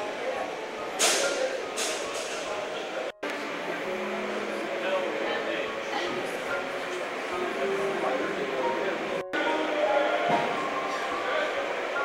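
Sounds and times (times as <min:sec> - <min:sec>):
indistinct chatter of many people: 0:00.0 - 0:12.0.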